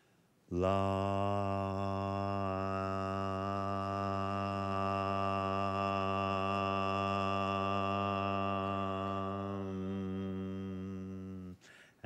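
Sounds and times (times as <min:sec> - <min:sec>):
man chanting low note: 0:00.5 - 0:11.6.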